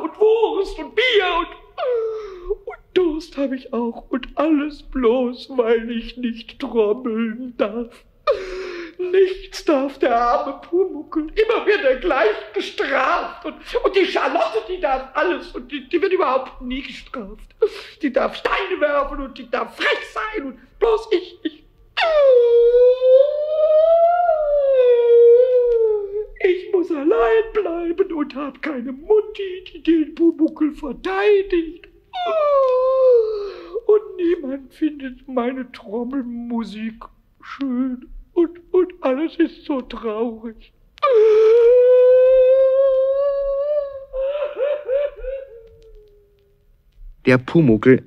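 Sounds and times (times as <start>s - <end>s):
high cartoon voice wailing: 19.8s - 27.9s, 31.4s - 33.4s, 41.0s - 46.3s.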